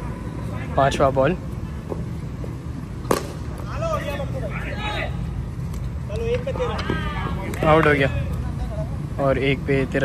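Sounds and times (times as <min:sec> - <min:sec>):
low background hum: 0:00.0 - 0:10.0
voices calling out: 0:03.1 - 0:10.0.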